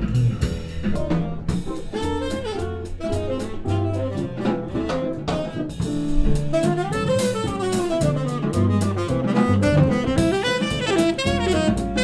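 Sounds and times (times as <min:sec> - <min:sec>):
drum kit with cymbals: 0:00.0 - 0:12.0
upright double bass: 0:00.0 - 0:12.0
tenor saxophone melody: 0:02.0 - 0:12.0.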